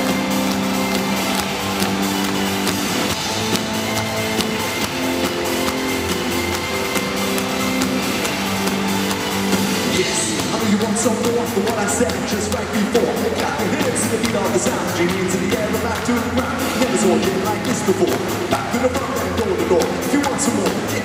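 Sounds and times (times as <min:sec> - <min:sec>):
drum kit: 0:00.0 - 0:21.0.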